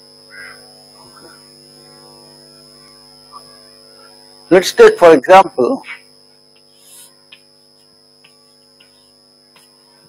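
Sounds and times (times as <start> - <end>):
electrical mains hum: 0.0 - 10.0
chalk tapping on blackboard: 6.5 - 9.7.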